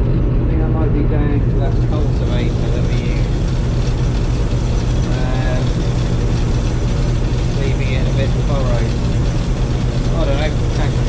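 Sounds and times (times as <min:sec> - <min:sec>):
combine harvester engine drone: 0:00.0 - 0:11.0.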